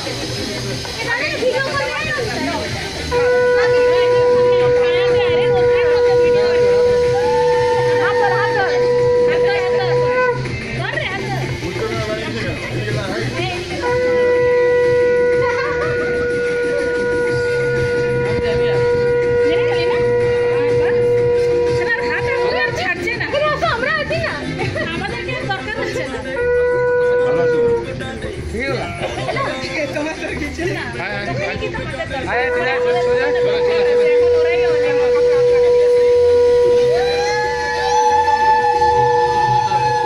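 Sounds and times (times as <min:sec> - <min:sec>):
people talking: 0:00.0 - 0:40.0
higher-pitched conch: 0:00.1 - 0:24.3, 0:26.2 - 0:28.2, 0:32.2 - 0:40.0
conch shell blown: 0:00.3 - 0:12.0, 0:13.4 - 0:23.7, 0:26.3 - 0:28.1, 0:32.3 - 0:40.0.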